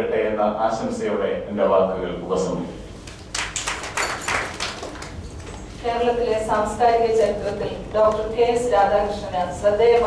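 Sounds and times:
audience clapping: 3.1s - 5.7s.

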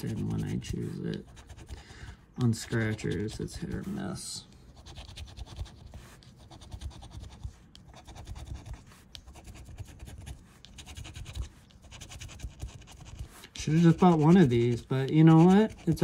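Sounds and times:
scratch-off ticket being scratched: 0.0s - 1.8s, 2.4s - 16.0s.

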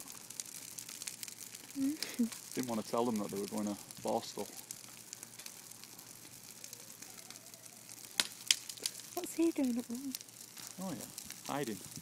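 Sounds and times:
bonfire crackling and hissing: 0.0s - 12.0s
sharp cracks of fire: 0.0s - 12.0s.

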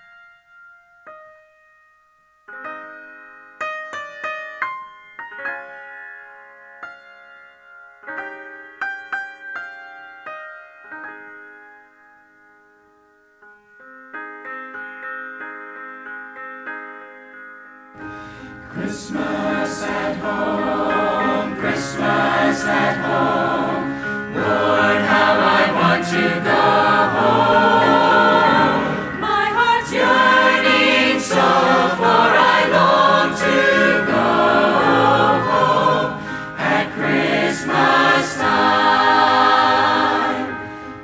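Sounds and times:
mixed choir singing: 18.6s - 40.7s.

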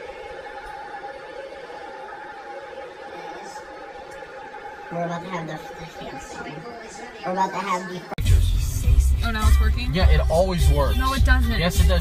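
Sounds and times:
room hum: 0.0s - 12.0s.

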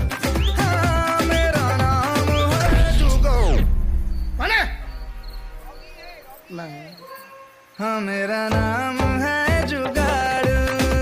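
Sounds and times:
man singing over music: 0.6s - 3.7s, 7.8s - 11.0s
short vocal sound with bending pitch: 2.5s - 6.0s.

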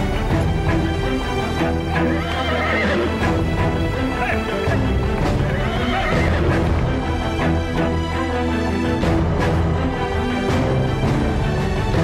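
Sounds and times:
dramatic soundtrack music: 0.0s - 12.0s
hoofbeats: 0.2s - 7.0s
horse whinnying: 1.9s - 3.4s, 4.1s - 6.7s.

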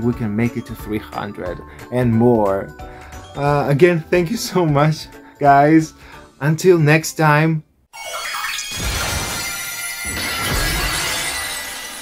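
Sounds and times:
glass shattering: 8.3s - 12.0s.

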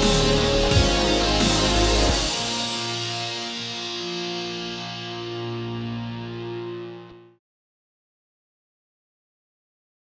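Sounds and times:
guitar chord ringing: 0.0s - 7.4s.

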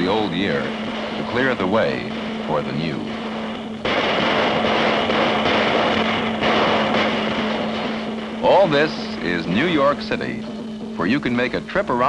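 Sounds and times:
clashing cymbals: 0.0s - 11.9s
drums: 0.0s - 12.0s
firecrackers: 0.0s - 12.0s.

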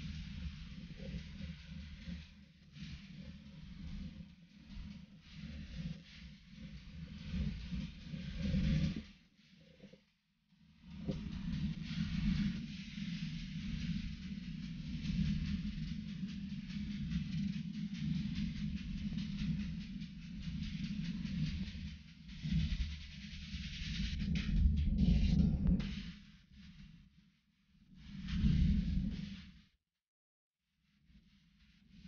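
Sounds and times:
wind rumbling on microphone: 0.0s - 9.1s, 10.8s - 26.2s.

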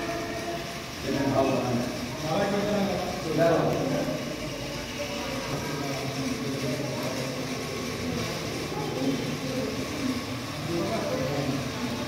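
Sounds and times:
indistinct background voices: 0.0s - 12.0s.

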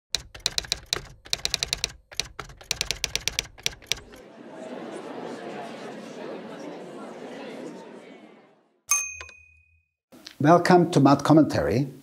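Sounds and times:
manual typewriter key strikes: 0.1s - 4.2s.

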